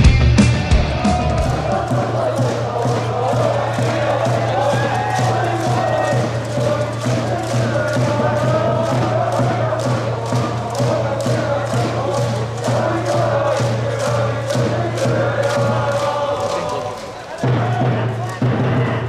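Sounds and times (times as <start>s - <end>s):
steady drum beat: 0.0s - 19.0s
crowd chanting in unison: 0.6s - 19.0s.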